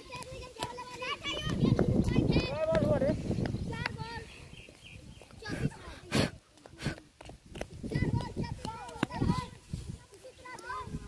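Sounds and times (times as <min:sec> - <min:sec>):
children calling and shouting: 0:00.0 - 0:11.0.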